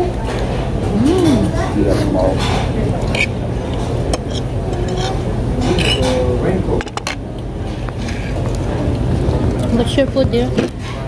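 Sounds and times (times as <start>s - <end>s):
steady low hum: 0.0s - 11.0s
forks clinking on plates: 2.4s - 7.2s.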